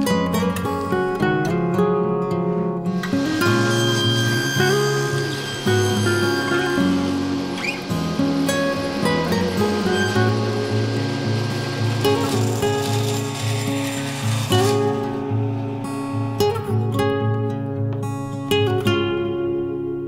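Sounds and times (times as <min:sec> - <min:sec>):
acoustic guitar music: 0:00.0 - 0:20.0.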